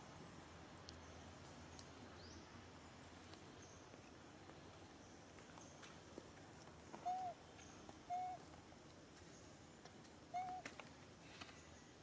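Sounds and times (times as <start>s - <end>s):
faint background hiss: 0.0s - 12.0s
bird hooting: 7.0s - 7.4s, 8.1s - 8.4s, 10.3s - 10.7s.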